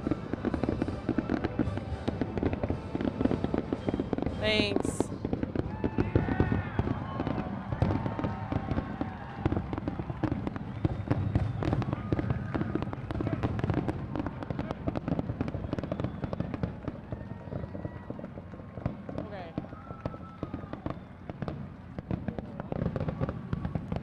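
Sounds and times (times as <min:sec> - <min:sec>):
firework bursts and crackles: 0:00.0 - 0:24.0.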